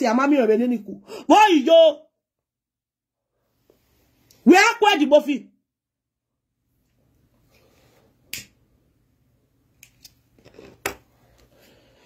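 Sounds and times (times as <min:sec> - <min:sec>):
quiet room noise: 0:03.2 - 0:05.6, 0:06.2 - 0:12.0
sharp snap or click: 0:08.3 - 0:08.6.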